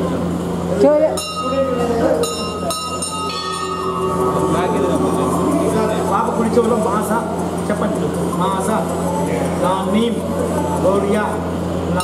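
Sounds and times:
low hum: 0.0s - 10.8s
hand bell ringing: 1.1s - 7.1s.

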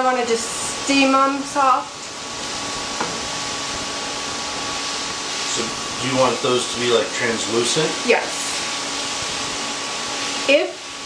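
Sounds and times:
vegetables sizzling in butter: 0.0s - 11.0s.

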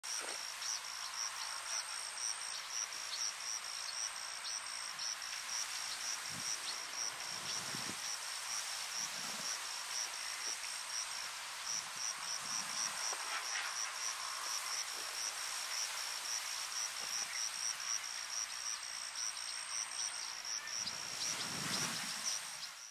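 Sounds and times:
insect chirping: 0.1s - 22.9s.

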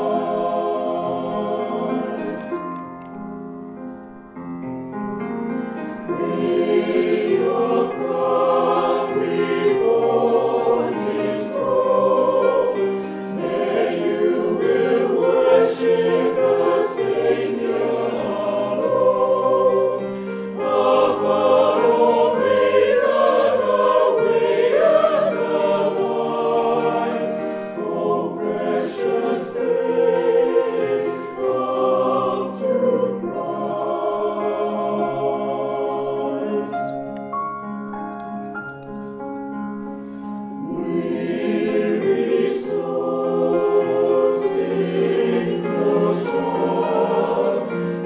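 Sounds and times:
choir singing in harmony: 0.0s - 3.2s, 5.2s - 37.7s, 39.0s - 48.0s.

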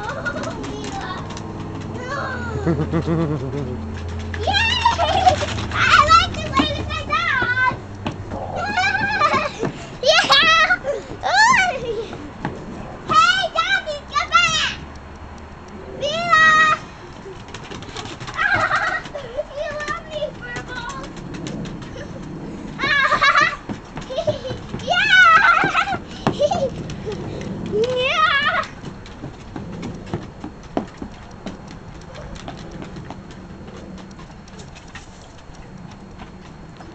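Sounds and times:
dog claws clicking on wooden deck: 0.0s - 36.9s
steady low hum: 0.0s - 36.9s
toddler squealing and babbling: 2.0s - 2.6s.

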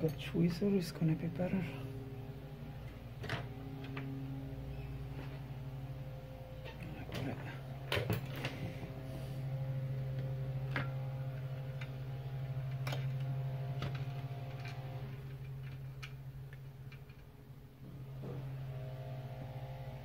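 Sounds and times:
low hum: 0.0s - 20.0s.

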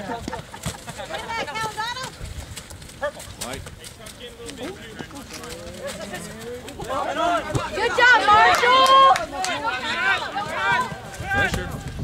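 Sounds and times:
people shouting and calling out: 4.6s - 12.0s.

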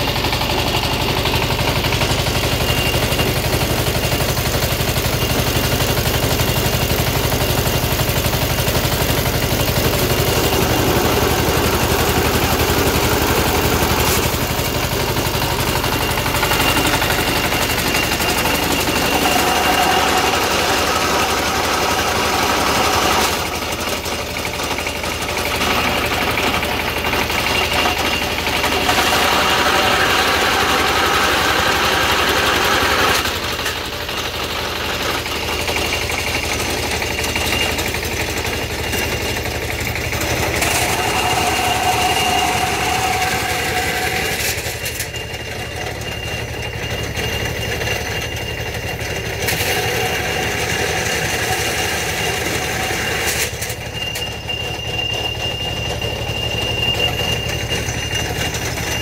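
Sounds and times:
diesel engine running machine: 0.0s - 59.0s
machine whine: 0.0s - 59.0s.

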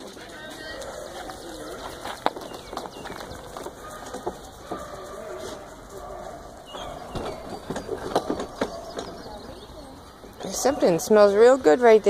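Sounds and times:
birdsong with low wavering calls: 0.9s - 12.0s.

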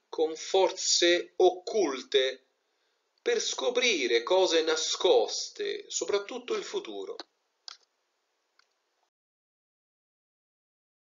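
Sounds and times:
man speaking: 0.1s - 2.4s, 3.3s - 7.3s.

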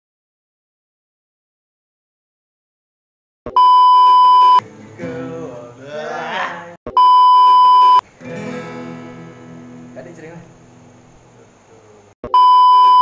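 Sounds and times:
high-pitched test-tone beep: 3.5s - 4.6s, 6.9s - 8.0s, 12.2s - 13.0s
acoustic guitar: 3.7s - 11.6s
person's voice: 5.0s - 6.8s.

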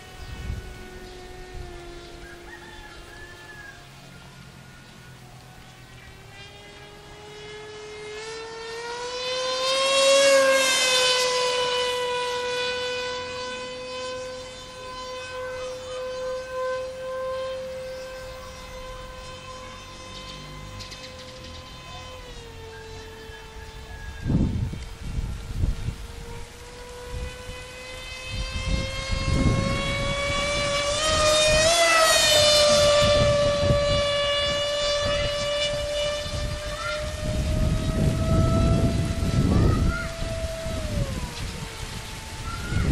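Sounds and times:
wind buffeting microphone: 0.0s - 8.7s, 9.3s - 42.9s
model plane motor whining: 0.0s - 42.9s.

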